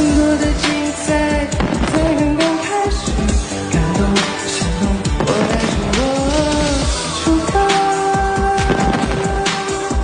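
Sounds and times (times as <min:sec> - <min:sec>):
electronic pop backing track: 0:00.0 - 0:10.0
young man singing: 0:00.0 - 0:10.0.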